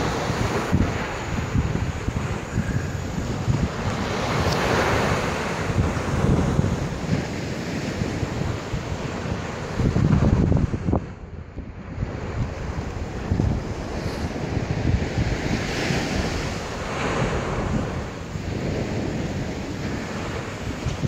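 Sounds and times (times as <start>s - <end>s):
surf breaking on beach: 0.0s - 21.0s
wind buffeting microphone: 0.0s - 21.0s.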